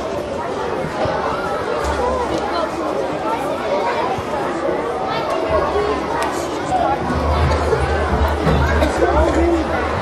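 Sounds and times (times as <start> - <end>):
children chattering and calling: 0.0 - 10.0.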